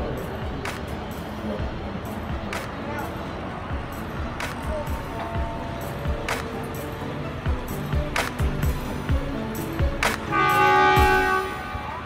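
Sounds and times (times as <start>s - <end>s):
train horn: 10.3s - 12.0s.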